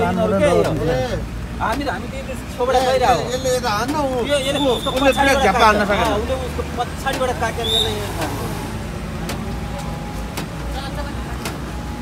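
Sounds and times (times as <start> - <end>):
people talking: 0.0 - 12.0
road traffic rumble: 0.0 - 12.0.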